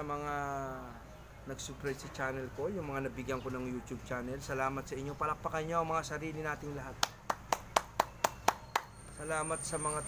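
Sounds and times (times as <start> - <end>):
man clapping hands: 7.0 - 8.9.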